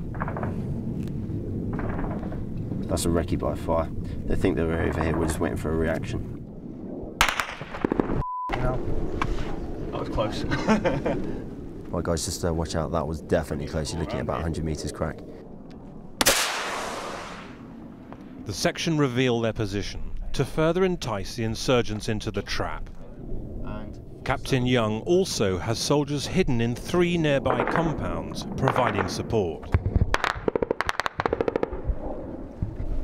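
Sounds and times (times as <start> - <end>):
rapid small-arms fire: 7.2 - 8.2, 16.2 - 17.6, 29.8 - 32.2
gunshot crack with hissing tail: 16.2 - 17.7.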